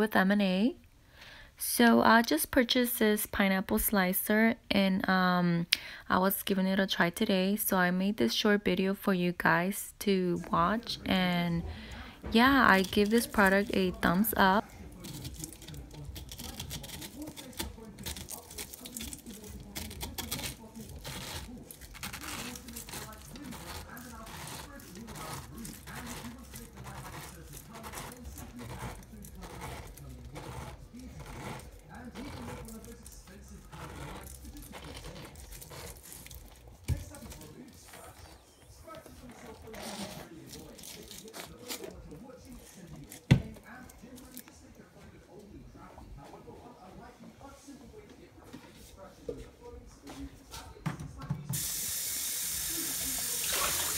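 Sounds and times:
corer cutting pineapple: 0:11.1 - 0:44.4.

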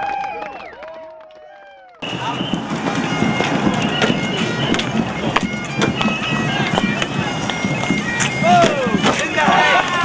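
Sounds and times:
dense crowd noise: 0:00.0 - 0:10.0
bagpipes playing held notes: 0:02.0 - 0:10.0
sharp knocks: 0:02.5 - 0:09.3.

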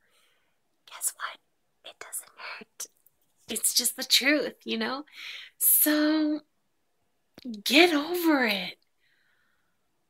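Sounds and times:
woman whispering: 0:00.8 - 0:06.2.

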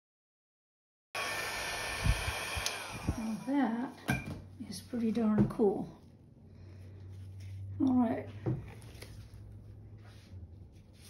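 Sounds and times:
hair dryer running: 0:01.2 - 0:04.0.

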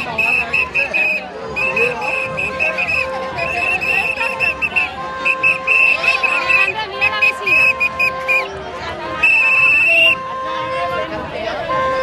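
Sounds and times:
whistle blasts: 0:00.0 - 0:08.5, 0:09.2 - 0:10.2
crowd chatter: 0:00.0 - 0:12.0
music: 0:00.0 - 0:12.0.

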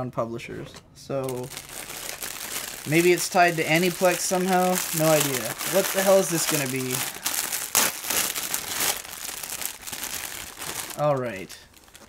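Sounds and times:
plastic bag crinkling: 0:01.2 - 0:12.0.

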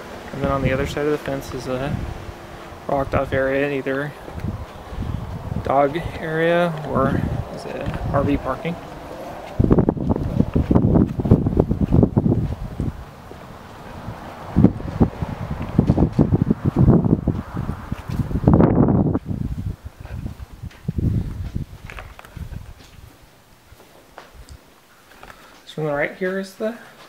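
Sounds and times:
wind buffeting microphone: 0:00.0 - 0:23.4.

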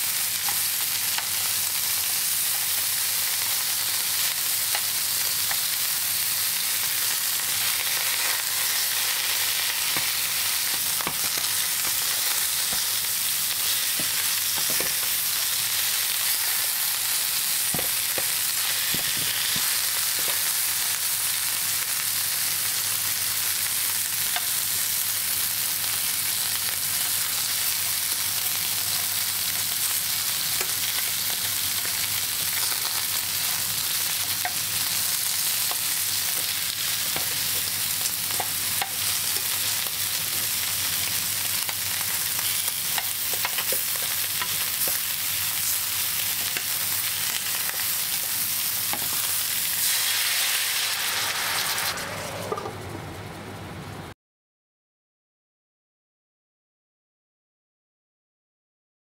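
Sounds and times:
food sizzling in a pan: 0:00.0 - 0:52.6.

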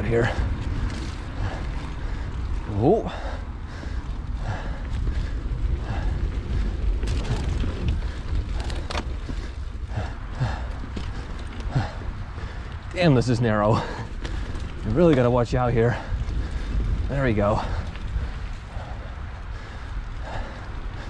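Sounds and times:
bike rattling and knocking: 0:00.0 - 0:21.0
tyres rumbling on dirt: 0:00.0 - 0:21.0
wind rushing over microphone: 0:00.0 - 0:21.0.

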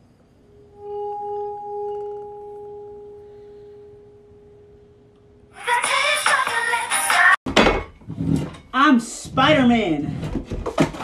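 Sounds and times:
wine glass rim singing: 0:00.5 - 0:04.2.

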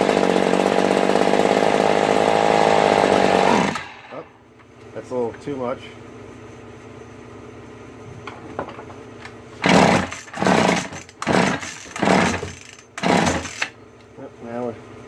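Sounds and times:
engine turning over: 0:00.0 - 0:04.2, 0:09.6 - 0:13.8
chainsaw recoil starter pulls: 0:09.6 - 0:13.8.

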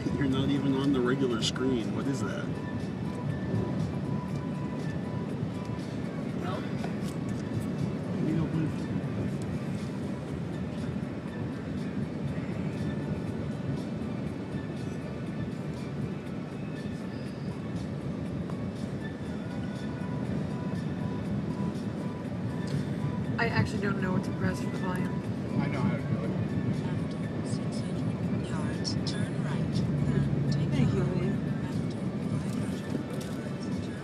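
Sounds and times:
car road and engine noise: 0:00.0 - 0:34.0
car stereo music and voices: 0:00.0 - 0:34.0.

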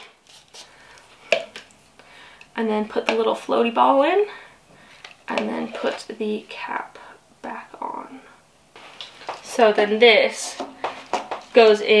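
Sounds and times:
plastic handling noise: 0:05.0 - 0:06.2.

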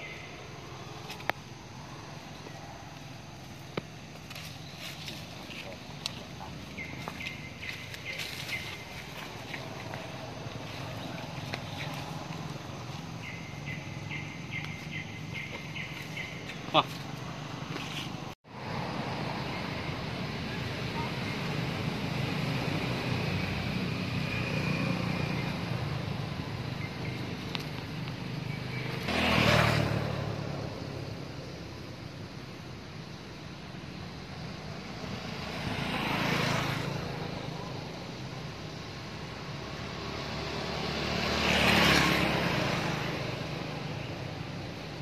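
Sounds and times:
vehicle passing by: 0:00.0 - 0:45.0.

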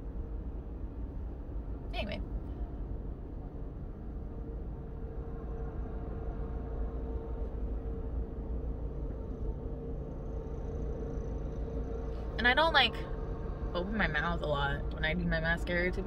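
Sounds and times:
faint constant hum: 0:00.0 - 0:16.0
low rumble: 0:00.0 - 0:16.0.

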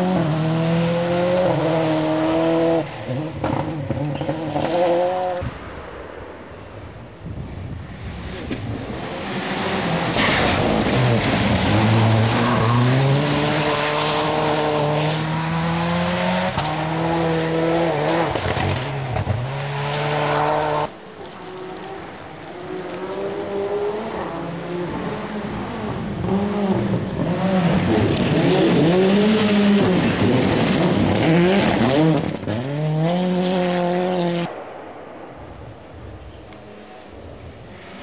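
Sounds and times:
rally car engines revving: 0:00.0 - 0:05.5, 0:08.0 - 0:34.6
gravel spray and tyre noise: 0:01.3 - 0:38.0.

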